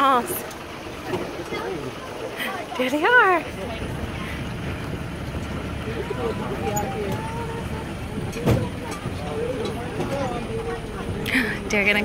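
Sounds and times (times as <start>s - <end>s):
faint chatter: 0.0s - 12.0s
tractor engine rumbling: 0.0s - 12.0s.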